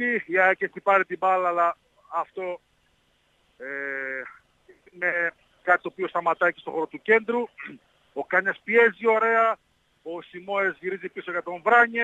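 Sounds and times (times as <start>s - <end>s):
man saying ehh: 3.6s - 4.4s.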